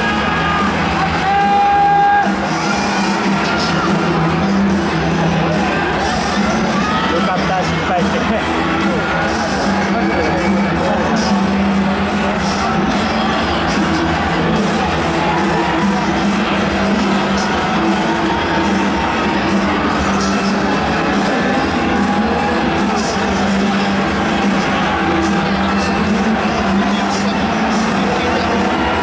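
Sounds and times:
crowd cheering: 0.0s - 29.0s
music over loudspeakers: 0.0s - 29.0s.

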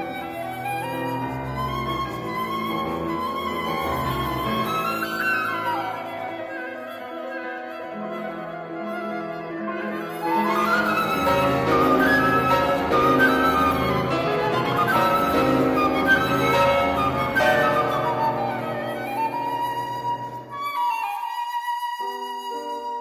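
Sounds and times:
flute: 0.0s - 23.0s
piano bass notes: 10.5s - 20.6s.

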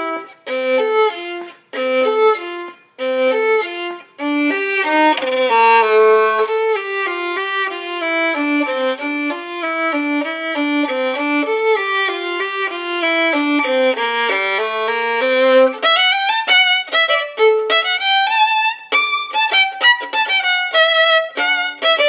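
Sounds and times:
solo violin melody: 0.0s - 22.0s.

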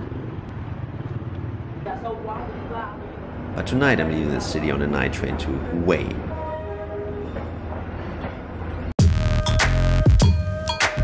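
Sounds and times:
train rumbling at a platform: 0.0s - 8.9s.

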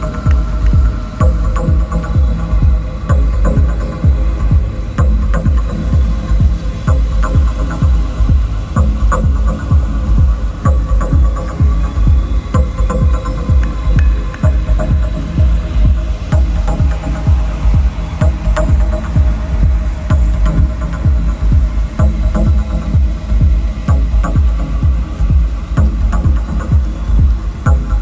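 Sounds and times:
techno music: 0.0s - 28.0s.

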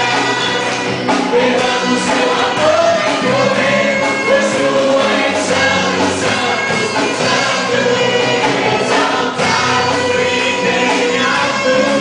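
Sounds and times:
backing singers: 0.0s - 12.0s
bass guitar: 0.0s - 12.0s
drums: 0.0s - 12.0s
keyboard: 0.0s - 12.0s
lead singer: 0.0s - 12.0s.

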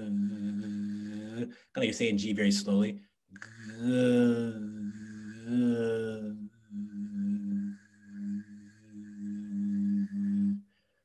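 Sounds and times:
voice holding throaty fricative: 0.0s - 10.6s.

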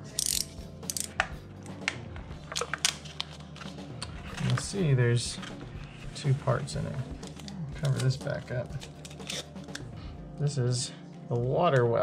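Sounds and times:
utility knife blade clicks: 0.0s - 1.3s.

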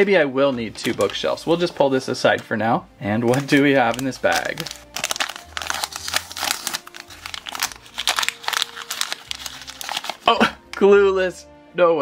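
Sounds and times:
plastic wrapper crinkling: 0.8s - 1.6s, 3.2s - 10.4s.

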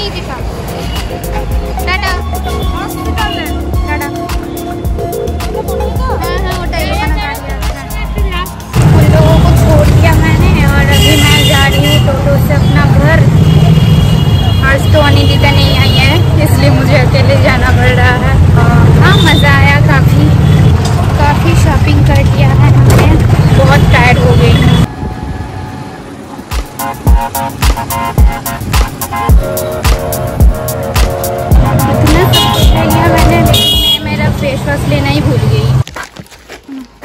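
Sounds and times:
music: 0.0s - 12.2s, 26.5s - 33.8s
voices: 0.0s - 24.9s, 31.5s - 35.8s
heavy low traffic rumble: 0.0s - 36.0s.

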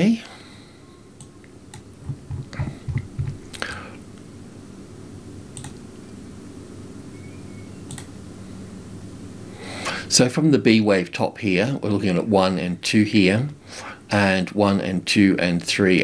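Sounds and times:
steady low hum: 0.0s - 16.0s
computer mouse clicks: 1.2s - 1.9s, 5.6s - 5.8s, 7.9s - 8.1s
soft low thumps: 2.0s - 3.4s.

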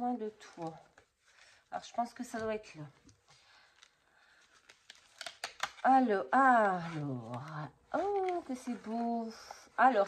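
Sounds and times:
paper card rustling: 3.5s - 5.8s, 6.6s - 10.0s.

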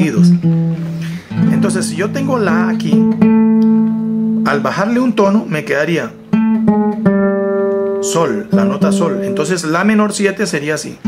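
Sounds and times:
classical guitar notes plucked: 0.0s - 10.4s.

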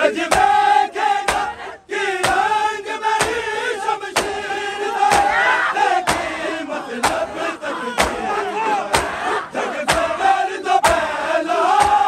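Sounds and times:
crowd chanting: 0.0s - 12.0s
men beating chests in unison: 0.0s - 12.0s.

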